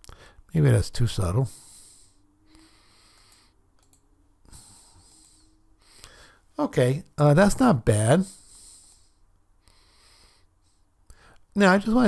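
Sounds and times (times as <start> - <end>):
computer mouse clicks: 3.1 - 4.1.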